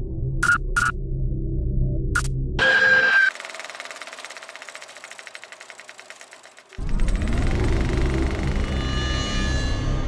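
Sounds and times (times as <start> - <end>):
fast mechanical clicking: 3.2 - 8.8.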